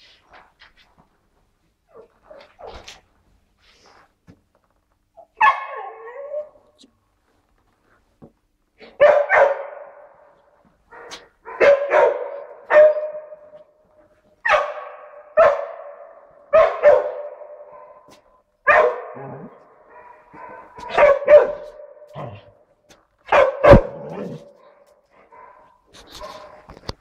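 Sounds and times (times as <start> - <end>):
dog barking: 5.4 - 6.5, 8.8 - 10.3, 10.9 - 13.7, 14.4 - 22.6, 23.3 - 26.7.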